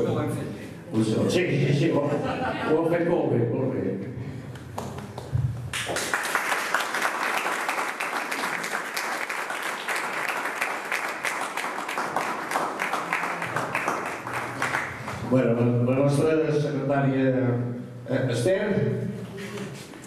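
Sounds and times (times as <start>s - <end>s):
crowd applauding: 4.8s - 15.3s.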